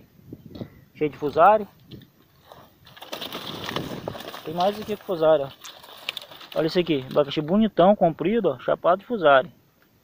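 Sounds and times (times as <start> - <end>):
leaves and dry grass rustling: 1.0 - 9.4.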